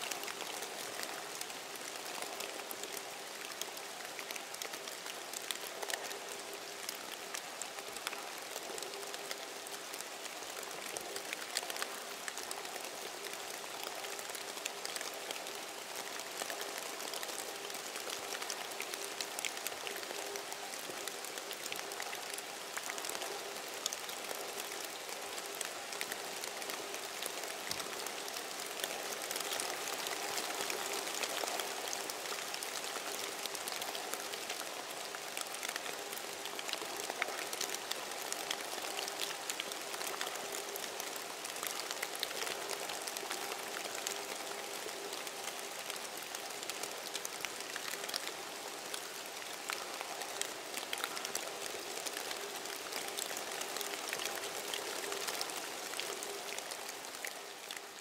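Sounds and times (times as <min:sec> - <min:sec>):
crackling hiss: 0:00.0 - 0:58.0.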